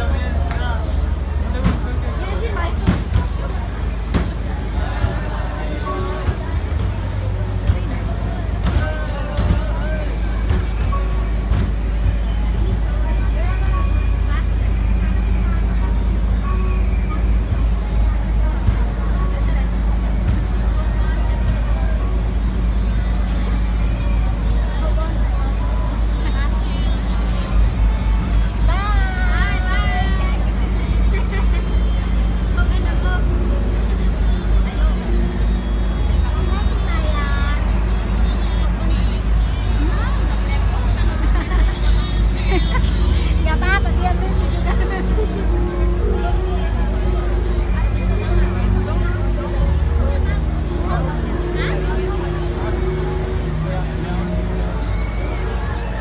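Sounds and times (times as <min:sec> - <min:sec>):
bus passing close: 0:00.0 - 0:56.0
people's voices: 0:00.0 - 0:56.0
road traffic rumble: 0:00.0 - 0:56.0.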